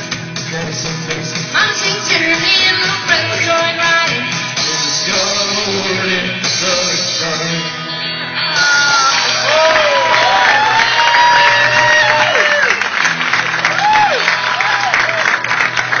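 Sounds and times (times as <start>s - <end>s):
live band music: 0.0s - 16.0s.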